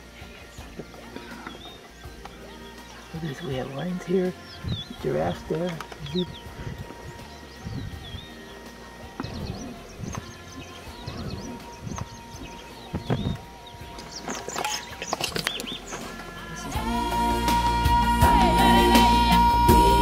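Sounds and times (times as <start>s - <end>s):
birds chirping: 0.0s - 20.0s
music: 0.0s - 20.0s
outdoor background noise: 0.0s - 20.0s.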